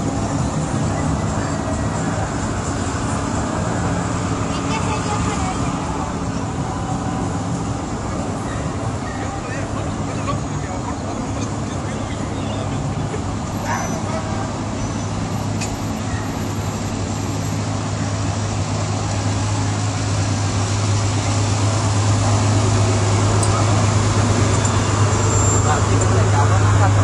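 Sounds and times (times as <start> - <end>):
truck engines idling: 0.0 - 27.0.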